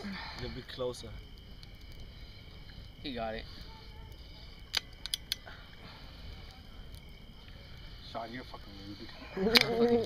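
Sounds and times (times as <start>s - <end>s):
low background hush: 0.0s - 10.0s
lighter clicking on bottle cap: 4.7s - 5.4s.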